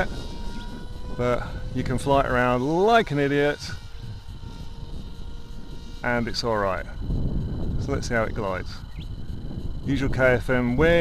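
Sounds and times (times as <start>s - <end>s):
electric motor and propeller whine: 0.0s - 11.0s
low rumble: 0.0s - 11.0s.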